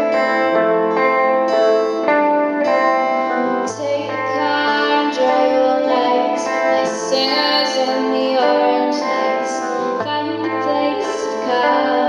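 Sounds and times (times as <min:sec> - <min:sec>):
electric guitar: 0:00.0 - 0:12.0
strummed acoustic guitar: 0:00.0 - 0:12.0
woman singing: 0:02.6 - 0:12.0.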